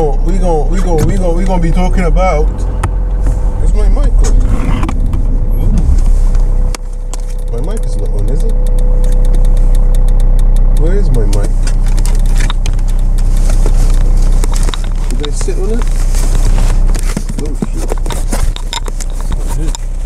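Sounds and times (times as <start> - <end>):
car engine running: 0.0 - 20.0.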